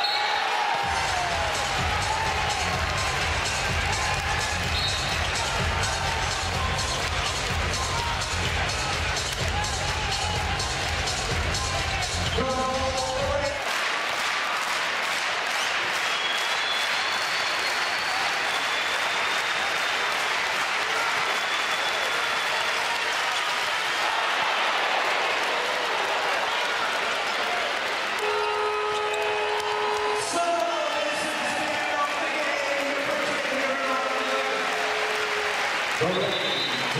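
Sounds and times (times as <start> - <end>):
loud crowd noise: 0.0 - 36.9
steady horn: 28.2 - 30.6.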